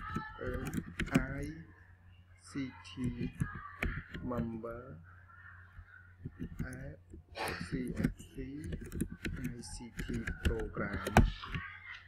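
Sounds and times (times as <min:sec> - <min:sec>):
computer keyboard typing: 0:00.0 - 0:01.6, 0:02.8 - 0:04.6, 0:06.2 - 0:11.9.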